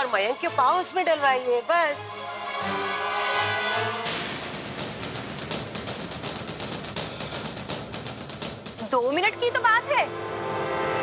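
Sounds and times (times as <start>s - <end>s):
dramatic score with fast drums: 2.3s - 11.0s.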